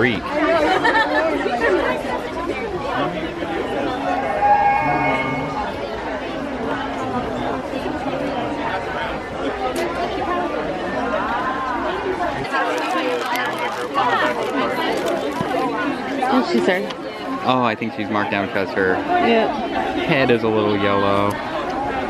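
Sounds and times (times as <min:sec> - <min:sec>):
crowd chatter: 0:00.0 - 0:22.0.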